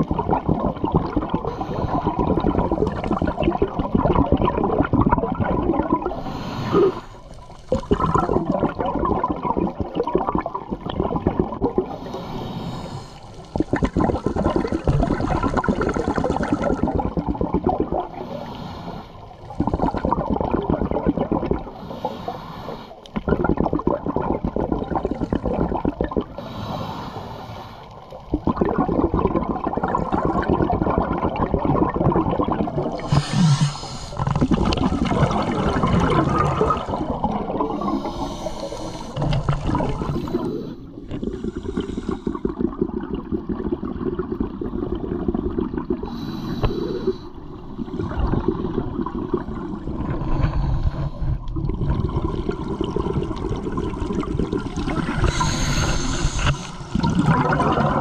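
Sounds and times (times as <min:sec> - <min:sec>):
underwater exhaust bubbles gurgling: 0:00.0 - 0:58.0.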